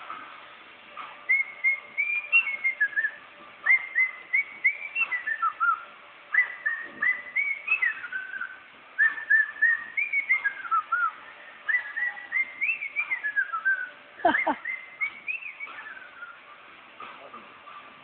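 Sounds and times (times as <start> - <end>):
person whistling a tune: 1.3 - 16.4.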